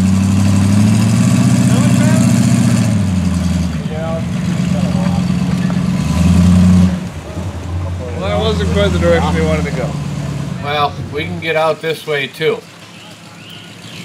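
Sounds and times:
truck engine under load: 0.0s - 14.0s.

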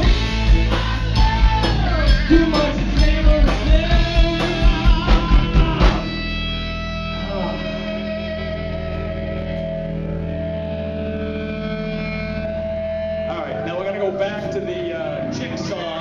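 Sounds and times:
distorted electric guitar chord: 0.0s - 16.0s.

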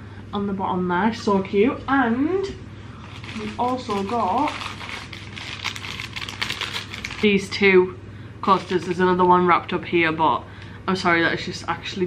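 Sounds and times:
paper wrapping crinkling: 3.0s - 7.4s, 8.5s - 9.0s.

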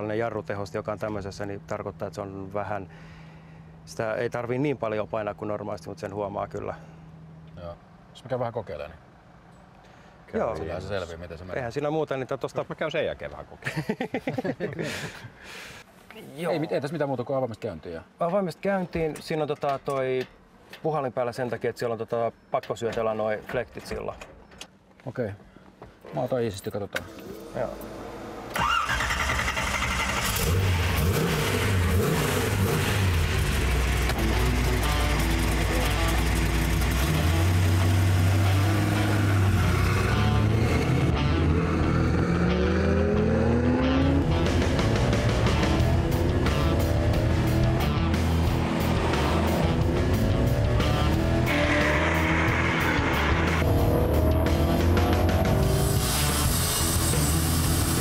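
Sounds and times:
car engine starting and revving: 27.0s - 58.0s
music: 34.1s - 58.0s.

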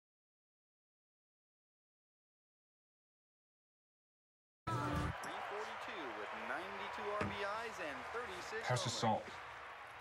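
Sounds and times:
man commentating on television: 5.1s - 10.0s.

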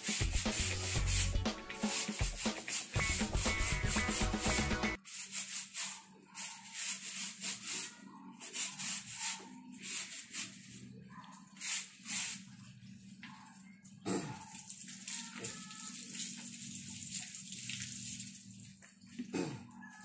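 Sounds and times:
music: 0.0s - 5.0s
brush scrubbing a tyre: 0.0s - 12.7s.

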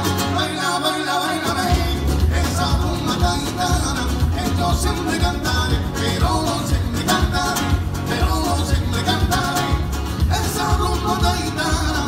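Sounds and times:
acoustic guitars strumming: 0.0s - 12.0s
man singing: 0.0s - 12.0s.

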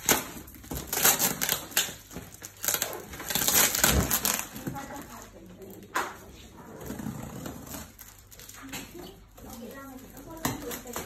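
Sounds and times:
cardboard and tape rustling: 0.0s - 11.0s.

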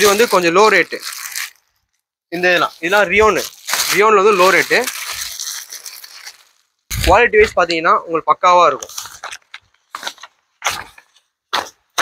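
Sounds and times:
plastic packet crinkling: 0.0s - 7.7s, 8.8s - 10.4s.

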